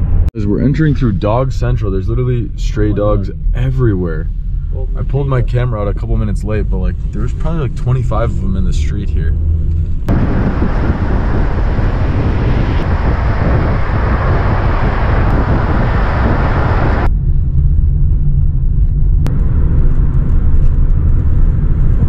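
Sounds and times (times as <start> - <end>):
low road and engine rumble: 0.0 - 22.0
wind and road hiss: 9.2 - 17.6.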